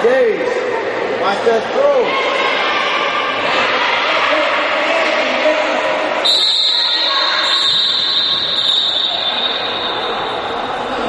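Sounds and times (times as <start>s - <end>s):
players and spectators shouting: 1.8s - 11.0s
high whistle-like tone: 6.2s - 10.6s.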